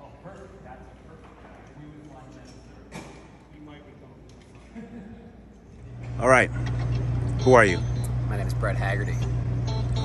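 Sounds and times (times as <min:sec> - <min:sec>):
bus idling: 0:05.9 - 0:10.0.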